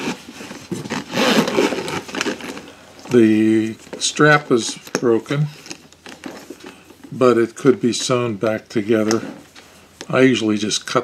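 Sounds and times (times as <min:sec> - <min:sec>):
zipper and leather rasping: 0:00.0 - 0:02.6.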